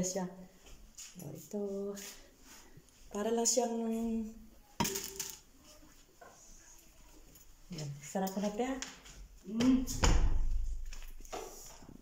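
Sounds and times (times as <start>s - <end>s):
woman speaking: 0.0s - 0.5s, 1.2s - 2.2s, 3.1s - 4.5s, 7.7s - 10.0s
faint room noise: 0.0s - 12.0s.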